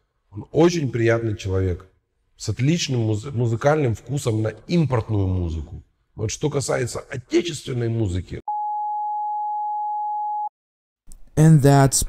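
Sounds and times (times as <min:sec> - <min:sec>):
censor bleep tone: 0:08.5 - 0:10.5.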